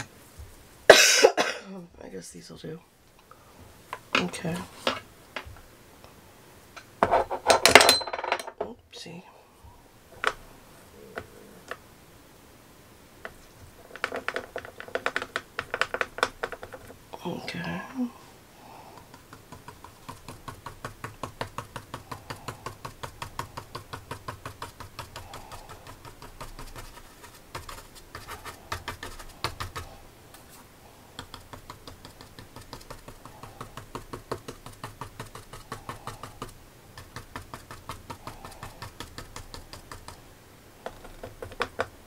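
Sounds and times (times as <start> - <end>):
paintbrush tapping on paper: 13.2 - 16.9, 18.9 - 30.0, 31.2 - 40.2, 40.8 - 42.0.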